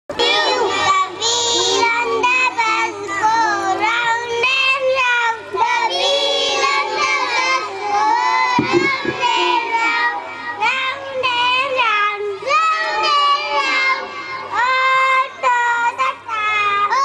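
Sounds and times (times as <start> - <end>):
girl singing into a microphone: 0.1 - 6.6, 8.3 - 17.0.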